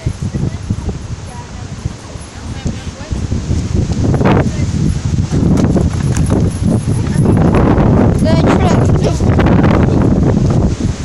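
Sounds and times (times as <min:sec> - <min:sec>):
indistinct voices: 0:00.0 - 0:09.8
wind rumble on microphone: 0:00.0 - 0:11.0.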